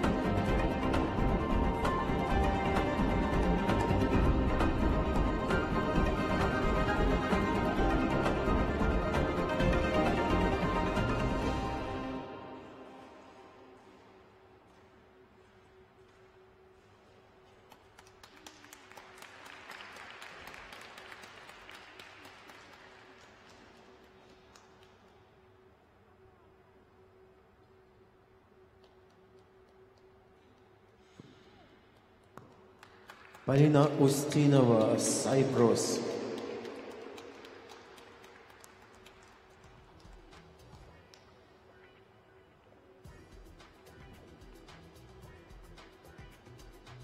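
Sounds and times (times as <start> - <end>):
crowd applauding: 17.6 - 25.0, 32.4 - 41.0
public address announcement echo: 33.4 - 38.5.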